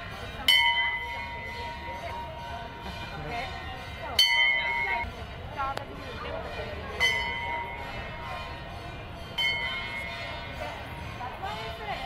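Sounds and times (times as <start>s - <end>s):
metal bell ringing: 0.0s - 5.2s, 6.5s - 12.0s.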